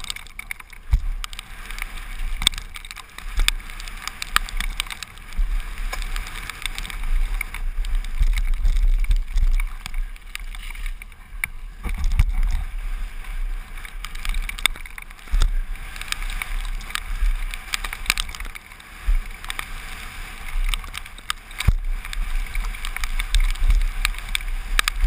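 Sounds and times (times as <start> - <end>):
bike chain and frame rattling: 0.0 - 25.0
wind buffeting microphone: 0.0 - 25.0.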